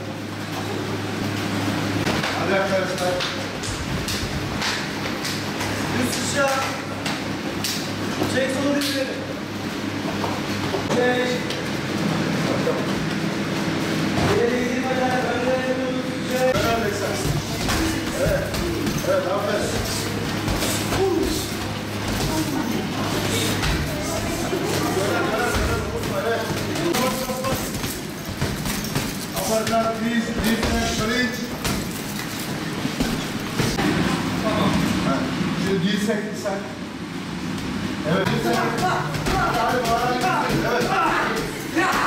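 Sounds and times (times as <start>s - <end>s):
steady low hum: 0.0s - 42.0s
voices talking and calling out: 13.8s - 28.2s
punches thudding on punching bags: 16.5s - 32.2s, 38.2s - 42.0s.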